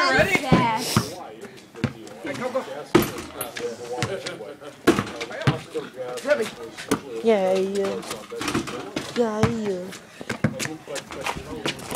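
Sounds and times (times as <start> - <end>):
basketball bouncing on pavement: 1.8 - 3.2, 4.0 - 5.7, 9.0 - 11.8.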